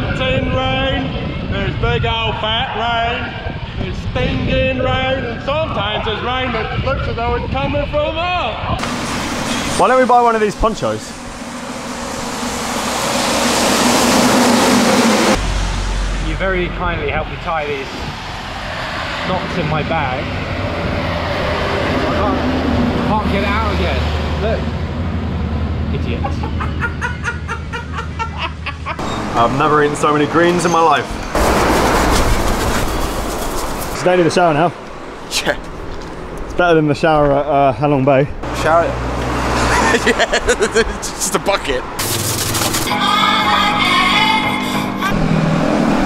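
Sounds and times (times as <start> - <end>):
water spraying from hose: 8.8 - 16.3, 42.0 - 42.9
traffic hiss on wet road: 8.8 - 16.4
heavy rain pouring: 8.8 - 16.8, 31.3 - 34.0.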